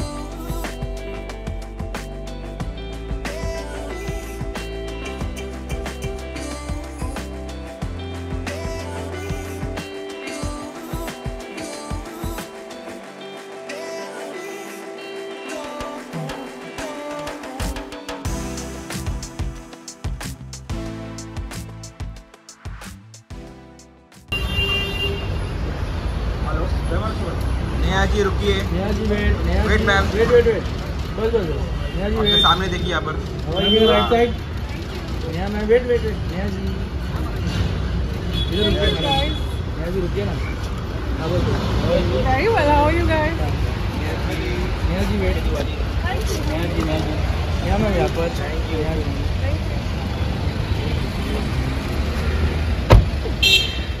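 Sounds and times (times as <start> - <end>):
street traffic rumble: 24.3 - 54.0
car door slamming: 52.8 - 53.7.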